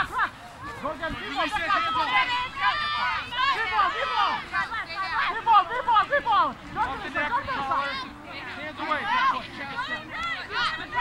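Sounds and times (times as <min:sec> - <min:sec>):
women shouting and calling: 0:00.0 - 0:11.0.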